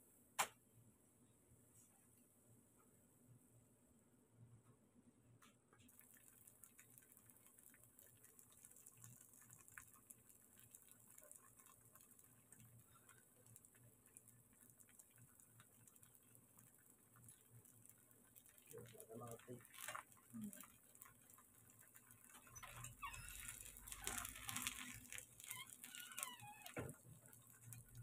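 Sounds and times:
batter crackling in frying oil: 0:05.8 - 0:28.0.

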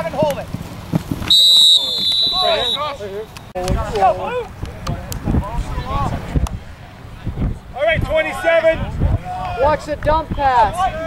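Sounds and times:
referee's whistle blast: 0:01.3 - 0:03.0.

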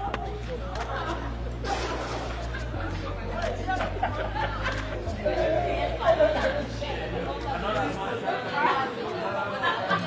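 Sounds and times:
indistinct overlapping chatter: 0:00.0 - 0:10.0.

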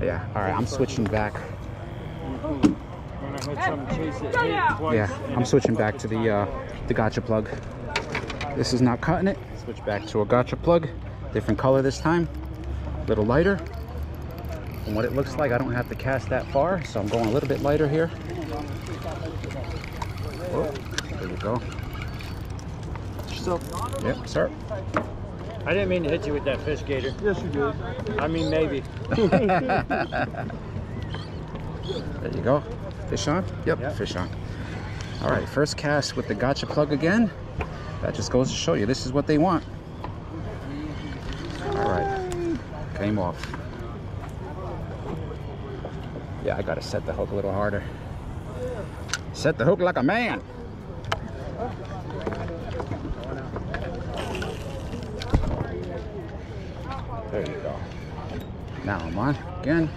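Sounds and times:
people chattering: 0:00.0 - 0:59.9.

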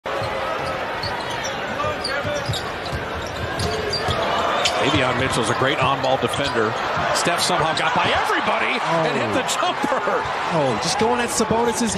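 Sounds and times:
arena crowd murmur: 0:00.1 - 0:11.9.

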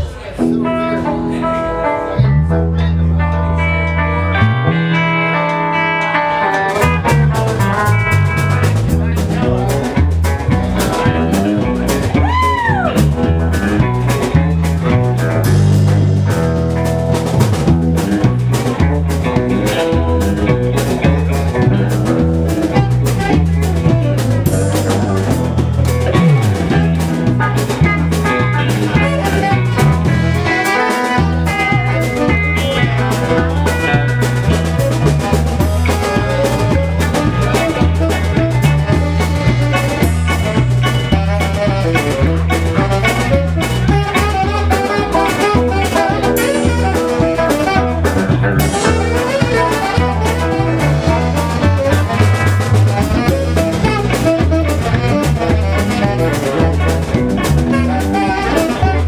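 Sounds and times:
bass guitar: 0:00.0 - 0:59.0
drum kit: 0:00.0 - 0:59.0
electric guitars: 0:00.0 - 0:59.0
guitar note bending: 0:00.3 - 0:59.0.

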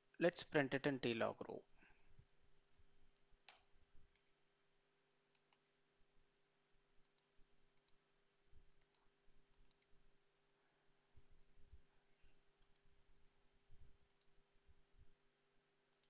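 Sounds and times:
computer mouse clicks: 0:03.4 - 0:04.3, 0:05.3 - 0:05.8, 0:07.0 - 0:08.0, 0:08.7 - 0:10.0, 0:12.6 - 0:12.9, 0:14.0 - 0:14.4.

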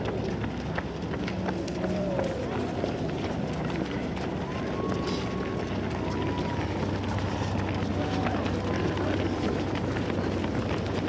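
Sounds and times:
faint voices: 0:00.0 - 0:11.0
runners' footsteps on asphalt: 0:00.0 - 0:11.0.

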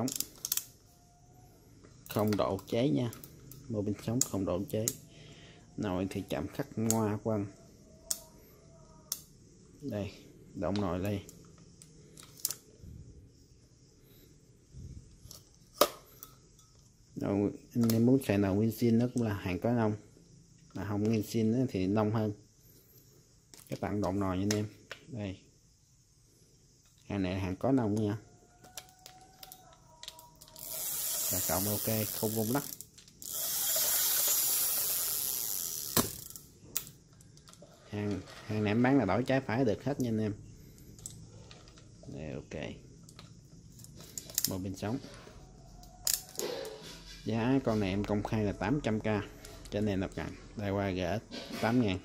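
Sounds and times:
fishing reel clicks: 0:00.0 - 0:00.8, 0:08.0 - 0:08.4, 0:28.8 - 0:37.6, 0:43.0 - 0:44.7
fishing reel rubbing: 0:29.3 - 0:36.5.

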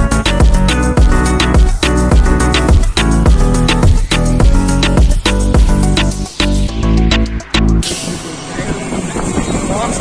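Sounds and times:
vehicle rumble and road noise: 0:00.7 - 0:10.0
people talking: 0:07.8 - 0:10.0.

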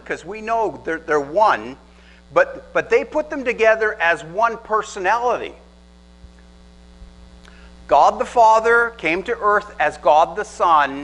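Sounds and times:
man speaking: 0:00.0 - 0:05.7, 0:07.9 - 0:11.0
electrical mains hum: 0:00.0 - 0:11.0.

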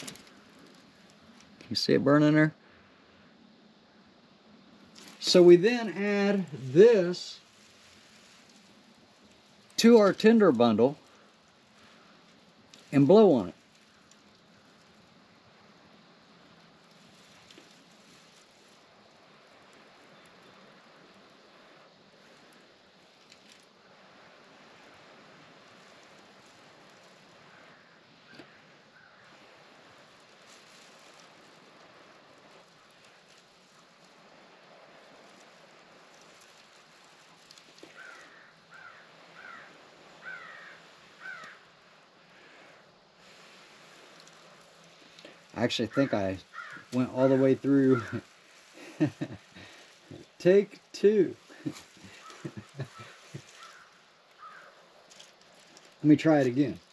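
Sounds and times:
faint outdoor hiss: 0:00.0 - 0:56.9
crow cawing: 0:27.4 - 0:29.4, 0:37.8 - 0:41.8, 0:46.0 - 0:47.0, 0:47.8 - 0:49.8, 0:51.5 - 0:54.9.

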